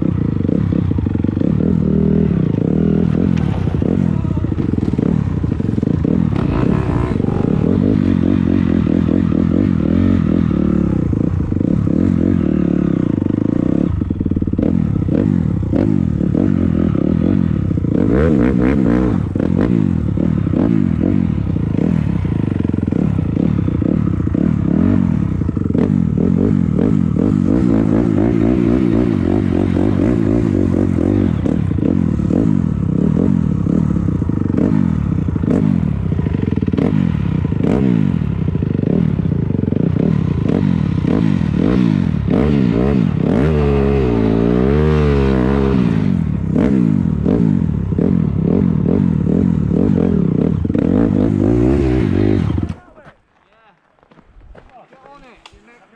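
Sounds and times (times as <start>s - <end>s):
dirt bike engine revving: 0.0s - 53.0s
gravel crunching under tyres: 52.1s - 55.9s.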